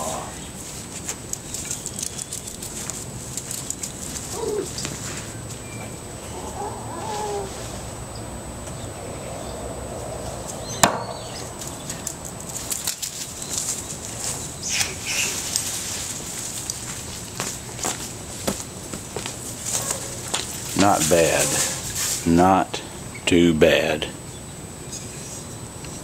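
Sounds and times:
light crackles and rustles: 0.4s - 6.0s, 11.2s - 22.4s
axe striking wooden stump: 10.8s - 11.2s.

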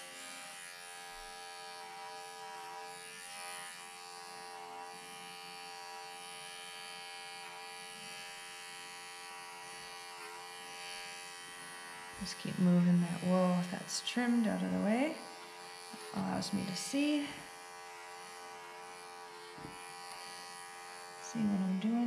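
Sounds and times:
electric clippers buzzing: 0.0s - 22.0s.

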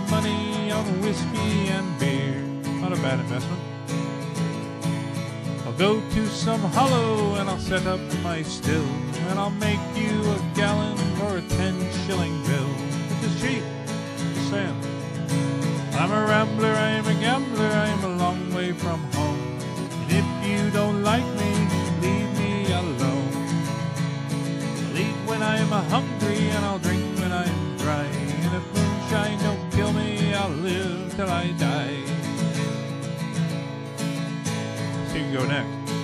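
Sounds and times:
strummed acoustic guitar: 0.0s - 36.0s
wavering guitar melody: 0.0s - 36.0s.

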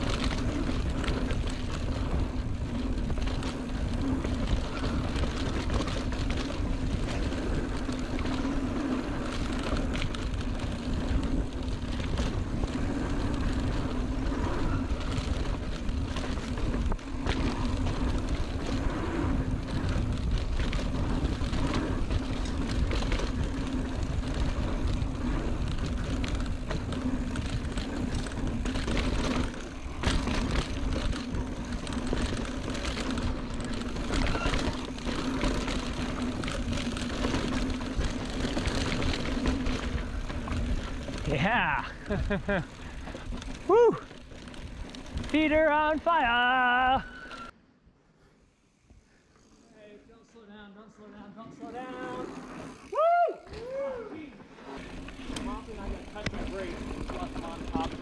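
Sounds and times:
bike knocks and rattles: 0.0s - 45.8s, 54.8s - 58.0s
tyre noise on dirt: 0.0s - 47.5s, 51.7s - 58.0s.

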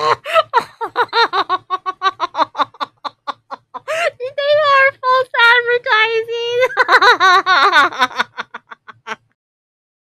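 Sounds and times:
woman laughing: 0.0s - 4.7s, 6.4s - 9.4s.

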